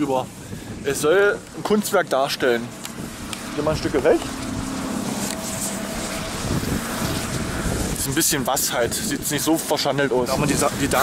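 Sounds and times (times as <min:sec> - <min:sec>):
faint wind turbine hum: 0:00.0 - 0:11.0
wind on microphone: 0:00.0 - 0:11.0.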